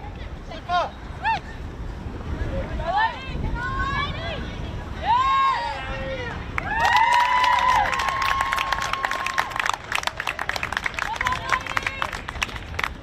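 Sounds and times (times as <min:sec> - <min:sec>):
people shouting and cheering: 0:02.7 - 0:12.2
people clapping: 0:06.5 - 0:13.0.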